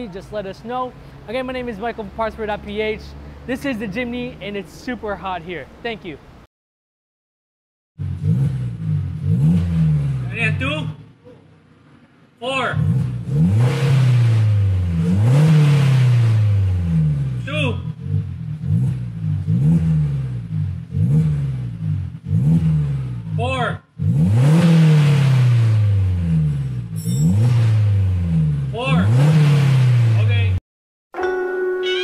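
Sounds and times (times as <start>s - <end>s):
car engine revving: 8.0s - 30.6s.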